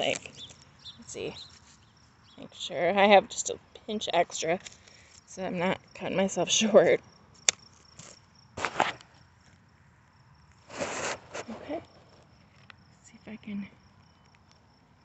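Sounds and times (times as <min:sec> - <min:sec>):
insect trill: 0:00.0 - 0:15.0
tubing rustling on fabric: 0:08.0 - 0:09.0, 0:10.6 - 0:12.2.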